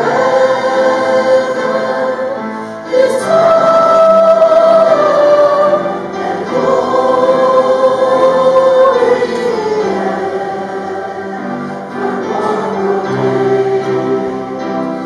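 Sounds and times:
congregation singing a hymn: 0:00.0 - 0:15.0.

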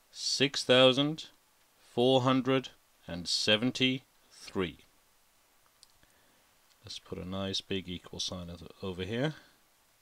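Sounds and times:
person speaking: 0:00.1 - 0:04.9, 0:06.7 - 0:09.6.

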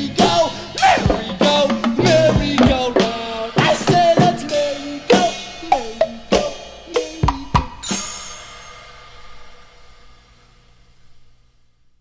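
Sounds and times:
drum strikes: 0:00.0 - 0:09.5
cymbal crash ringing: 0:05.1 - 0:11.0.

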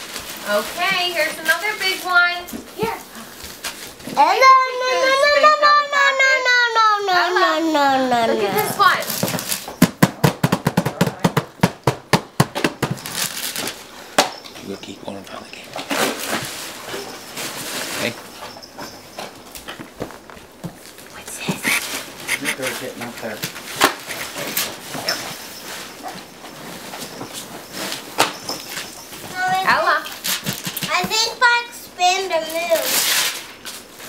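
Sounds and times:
crackling and rustling: 0:00.0 - 0:05.2, 0:08.5 - 0:11.1, 0:12.6 - 0:34.0.

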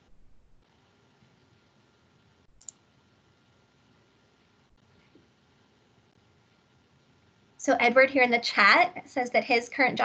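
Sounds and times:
sharp clicks: 0:02.6 - 0:02.8.

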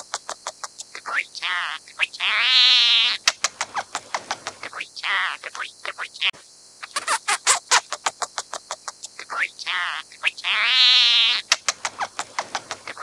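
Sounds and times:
bird clicking notes: 0:11.4 - 0:13.0.

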